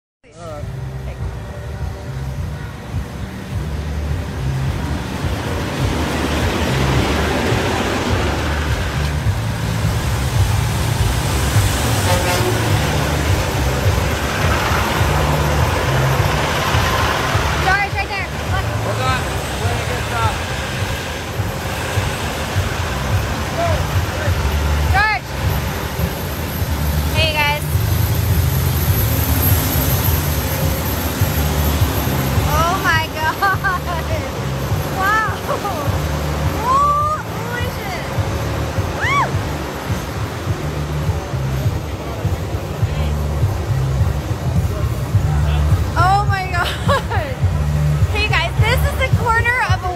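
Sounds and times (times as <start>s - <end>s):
truck engines idling: 0.4s - 49.9s
crowd chatter: 39.2s - 49.9s.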